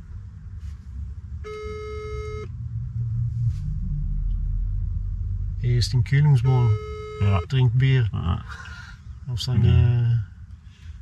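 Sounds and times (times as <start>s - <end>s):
car cabin rumble: 0.0s - 11.0s
telephone ringback beep: 1.4s - 2.5s, 6.7s - 7.5s.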